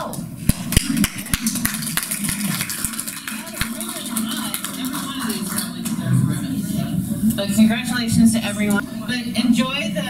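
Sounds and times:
people applauding: 0.5 - 6.4.

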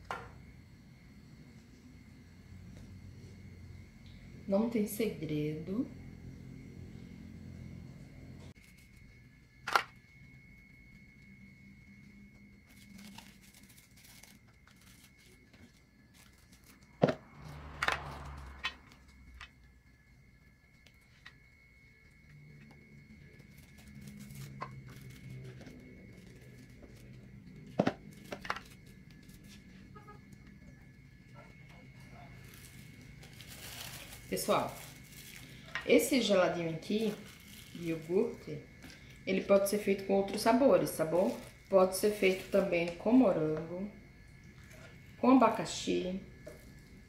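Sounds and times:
plastic bags crinkling: 32.3 - 39.2, 41.0 - 42.6.

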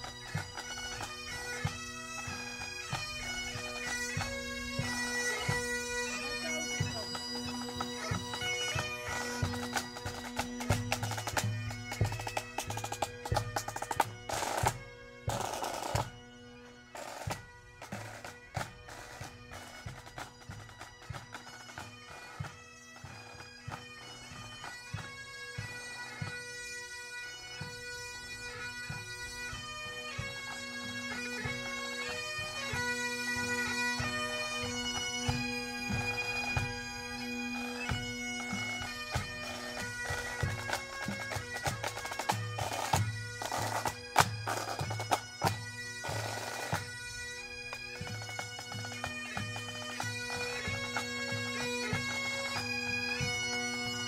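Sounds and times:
bagpipes playing: 0.0 - 54.0.

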